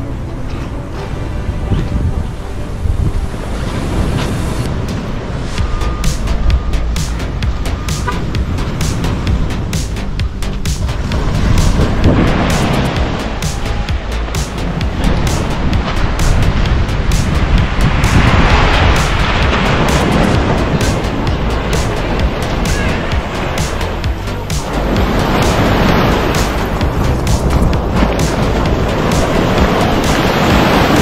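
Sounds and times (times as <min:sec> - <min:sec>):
background music with steady beat: 0:00.0 - 0:31.0
surf: 0:00.0 - 0:31.0
wind rumbling on microphone: 0:00.0 - 0:31.0.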